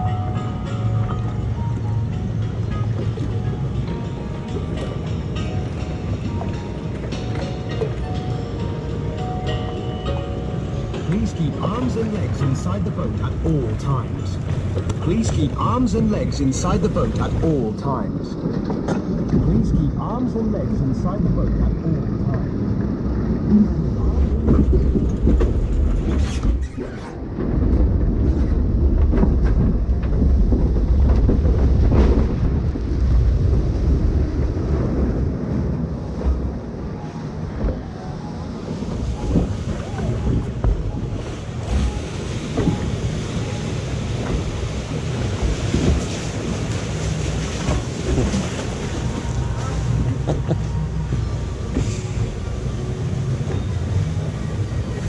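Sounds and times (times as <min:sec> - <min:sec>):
rushing water around boat hull: 0:00.0 - 0:55.0
wind buffeting microphone: 0:10.5 - 0:55.0.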